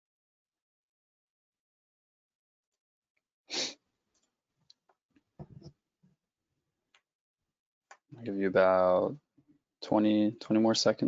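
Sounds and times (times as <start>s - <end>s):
person sniffing close to microphone: 3.5s - 3.8s.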